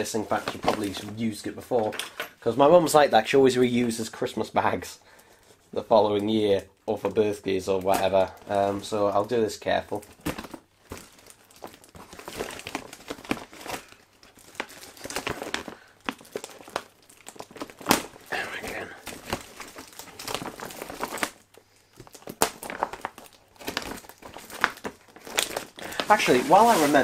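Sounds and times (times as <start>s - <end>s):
gift bag crinkling and rustling: 0.0s - 27.0s.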